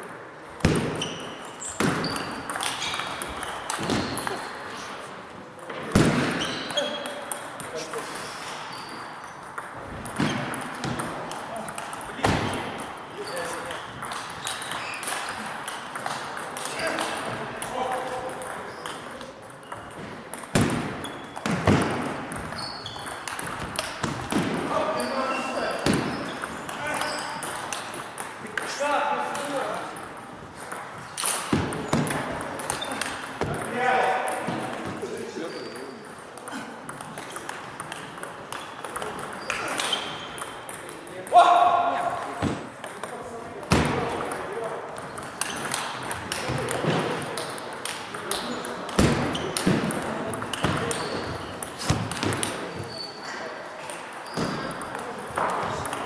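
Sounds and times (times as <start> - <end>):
voices in a hall: 0.0 - 56.0
table tennis balls clicking: 0.4 - 4.8, 5.5 - 41.4, 42.0 - 53.0, 53.8 - 56.0.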